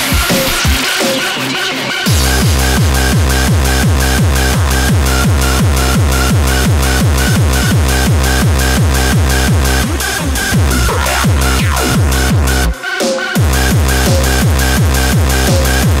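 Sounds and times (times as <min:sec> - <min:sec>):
heavy kick drum: 0:00.0 - 0:01.0, 0:02.1 - 0:16.0.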